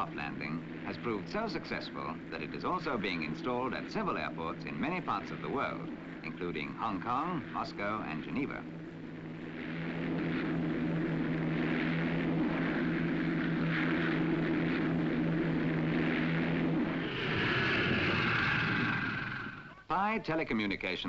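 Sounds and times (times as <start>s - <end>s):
aircraft engines droning: 0.0s - 20.2s.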